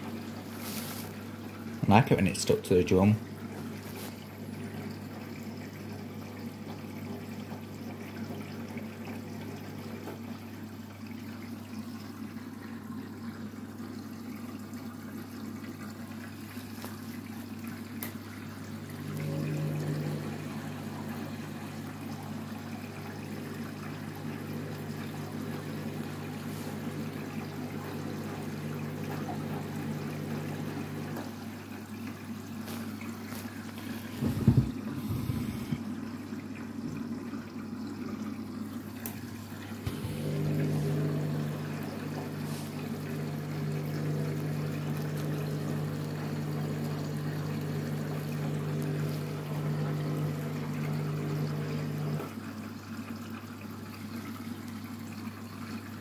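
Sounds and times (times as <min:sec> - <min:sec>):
washing machine motor hum: 0:00.0 - 0:53.2
water sloshing in drum: 0:15.2 - 0:52.4.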